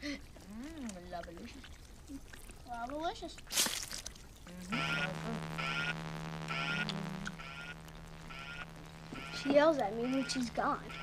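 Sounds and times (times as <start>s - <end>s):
steady electronic hum: 4.3s - 11.0s
short warbling alarm beeps: 4.6s - 11.0s.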